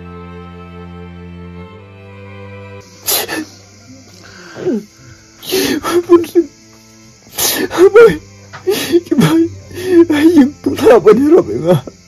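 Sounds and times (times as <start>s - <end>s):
sad bowed-string music: 0.0s - 12.0s.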